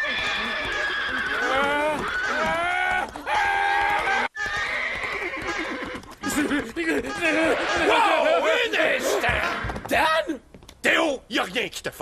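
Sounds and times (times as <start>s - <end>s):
cartoon horse whinnying: 0.0s - 6.6s.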